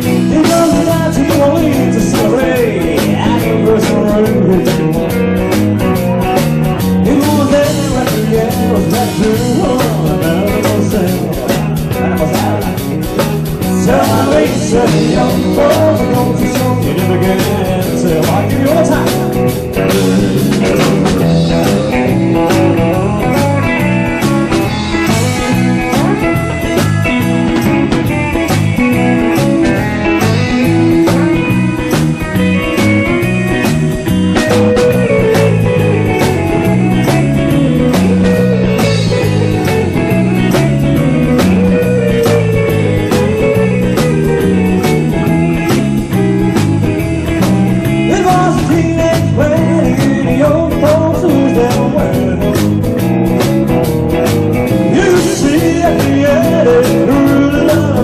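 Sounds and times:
bass: 0.0s - 58.0s
drum kit beat: 0.0s - 58.0s
electric guitars: 0.0s - 58.0s.

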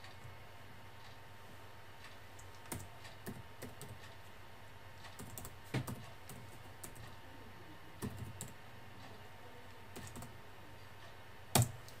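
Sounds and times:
keyboard typing clicks: 2.4s - 4.1s, 11.5s - 12.0s.

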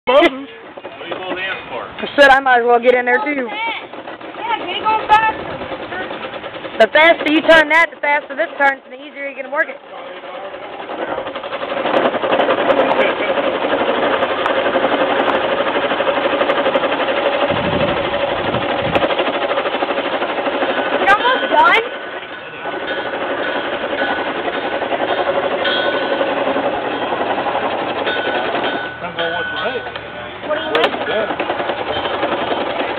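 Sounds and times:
chisel rasping on spinning wood: 0.1s - 32.9s.

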